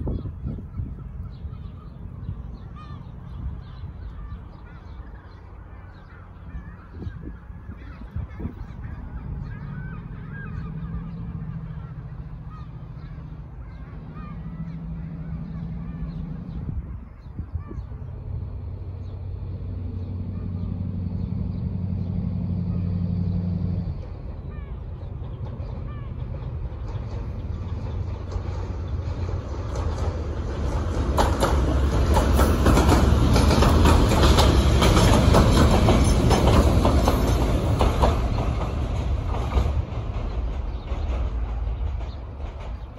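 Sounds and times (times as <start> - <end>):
diesel locomotive engine: 0.0 - 42.9
train wheels rumbling: 0.0 - 42.9.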